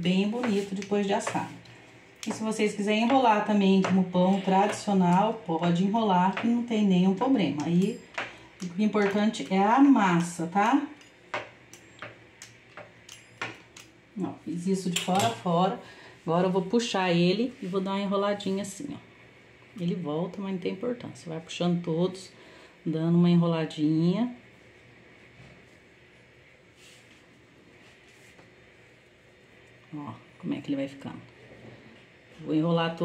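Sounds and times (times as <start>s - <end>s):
soft rustles: 26.7s - 28.6s.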